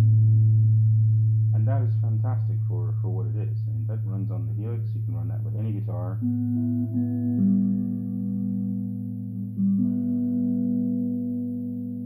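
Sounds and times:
electric guitar note ringing: 0:00.0 - 0:12.0
low electrical hum: 0:00.0 - 0:12.0.

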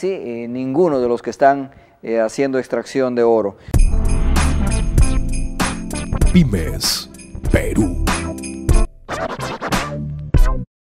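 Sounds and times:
tv channel ident jingle: 0:06.2 - 0:08.2.

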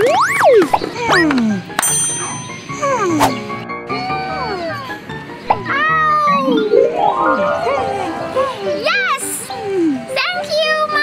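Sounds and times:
background music: 0:00.0 - 0:10.5.

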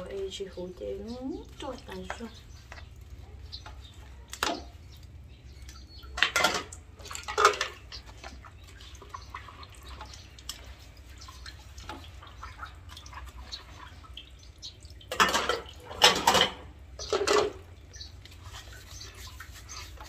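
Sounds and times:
water splashing in a basin: 0:00.0 - 0:20.0.

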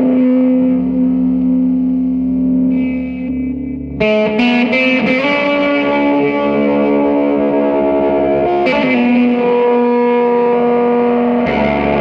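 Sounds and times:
electric guitar drone notes: 0:00.0 - 0:12.0.

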